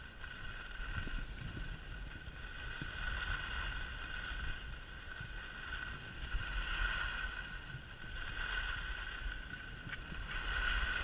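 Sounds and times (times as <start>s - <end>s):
skis sliding over snow: 0.0s - 11.0s
wind rumbling on microphone: 0.0s - 11.0s.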